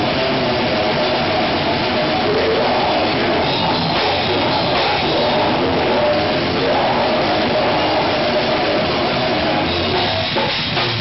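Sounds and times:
distorted guitars: 0.0 - 11.0
heavy metal band playing: 0.0 - 11.0
loud drum kit: 0.0 - 11.0.

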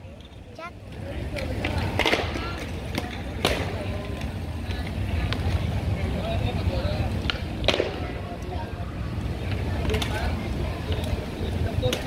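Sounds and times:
skate wheels rolling on stone: 0.0 - 12.0.

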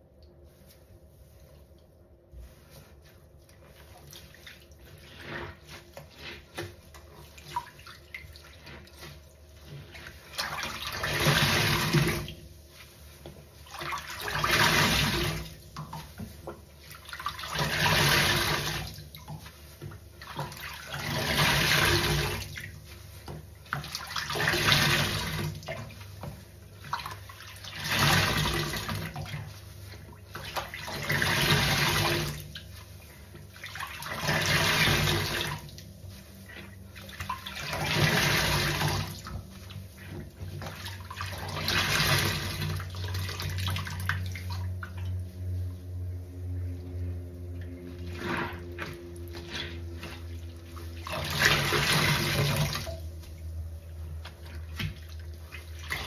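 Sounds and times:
water dripping and splashing: 3.4 - 56.0
sponge squeezed rush of water: 20.2 - 22.8, 47.9 - 52.9.

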